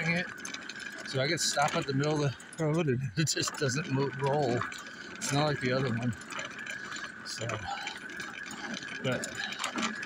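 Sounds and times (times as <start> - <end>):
faint light rattling: 0.0 - 10.0.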